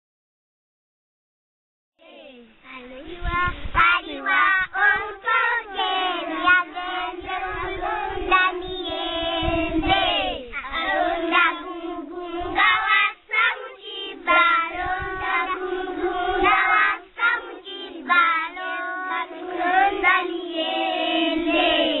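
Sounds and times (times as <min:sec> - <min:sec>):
children singing together: 0:02.7 - 0:22.0.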